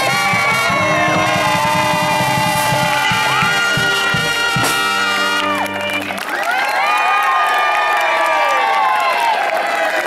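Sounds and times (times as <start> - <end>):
steady drumbeat: 0.0 - 5.4
brass band holding long notes: 0.0 - 6.5.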